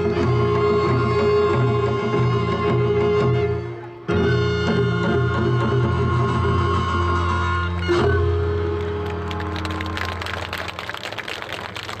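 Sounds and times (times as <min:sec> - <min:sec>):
audience applause: 0:08.7 - 0:12.0.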